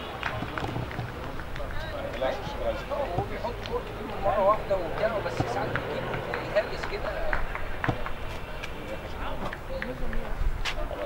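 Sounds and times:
distant voices calling out: 0.0 - 10.4
outdoor background noise: 0.0 - 11.0
light knocks: 0.2 - 1.7, 2.4 - 8.5.

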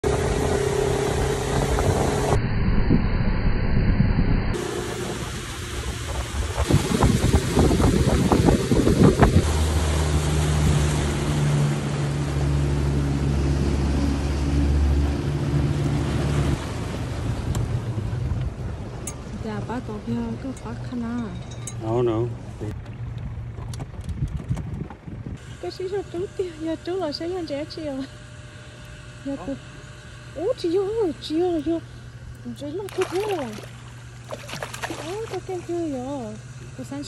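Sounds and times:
outboard motor running: 0.0 - 2.4, 4.6 - 37.0
wake rushing: 4.6 - 19.1, 32.9 - 35.8
hull slapping on water: 32.8 - 36.0.

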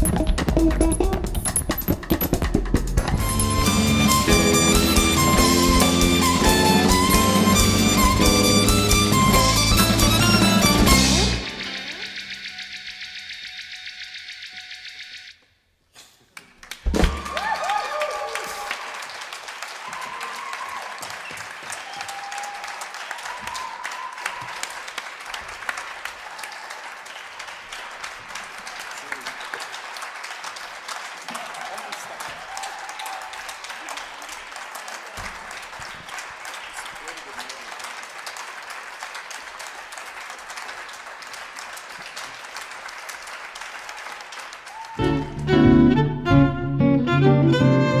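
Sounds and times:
audience applause: 3.2 - 12.4, 16.4 - 46.0.

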